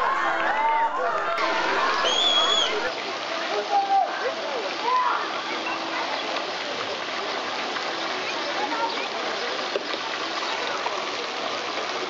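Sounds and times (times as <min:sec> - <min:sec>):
people shouting: 0:00.0 - 0:02.9
running water from fountains: 0:00.0 - 0:12.0.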